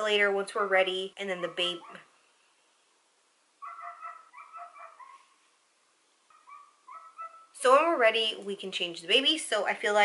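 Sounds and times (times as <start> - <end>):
dog whining: 3.6 - 5.3, 6.3 - 7.5.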